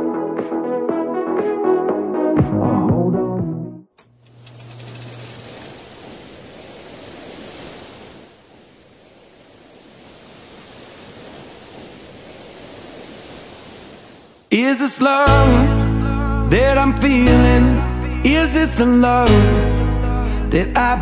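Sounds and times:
sea waves breaking on beach: 0:04.8 - 0:14.9.

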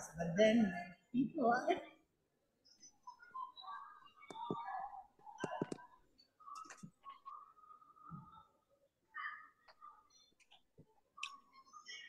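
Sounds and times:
faint muffled voices: 0:02.6 - 0:12.0.

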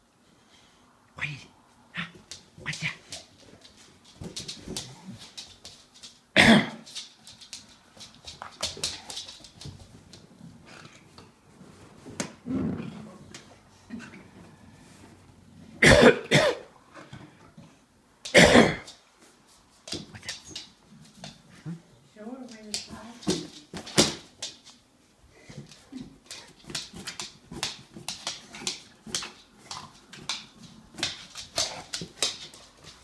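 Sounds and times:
loud cough-like snorts: 0:06.4 - 0:06.8, 0:15.8 - 0:16.7, 0:18.3 - 0:18.9.

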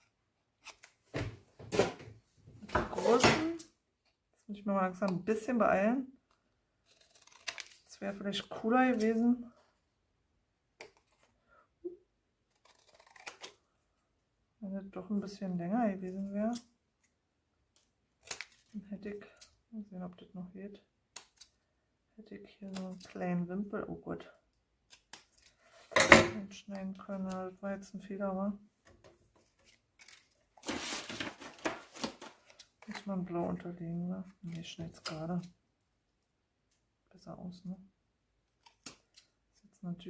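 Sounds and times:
paper handling: 0:29.4 - 0:33.1
cardstock rustling: 0:29.4 - 0:33.3.

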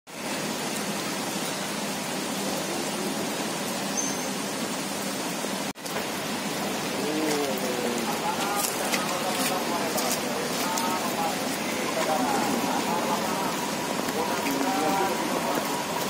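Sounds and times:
steady rain falling: 0:00.1 - 0:16.0
faint voices: 0:06.9 - 0:16.0.

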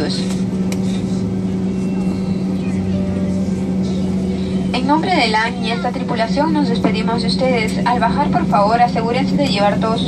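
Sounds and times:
jet engines droning: 0:00.0 - 0:10.0.

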